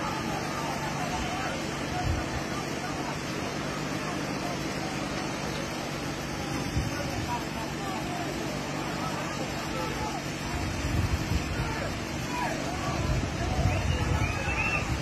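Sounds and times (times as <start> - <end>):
people calling and shouting: 0.0 - 15.0
steady background noise: 0.0 - 15.0.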